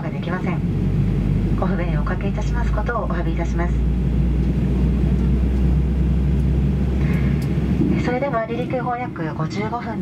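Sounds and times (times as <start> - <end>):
airliner cabin engine drone: 0.0 - 10.0.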